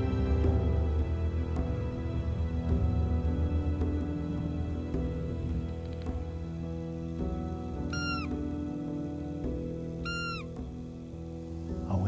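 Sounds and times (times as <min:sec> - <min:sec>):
squeaky deer call blasts: 0:07.9 - 0:08.4, 0:10.0 - 0:10.6.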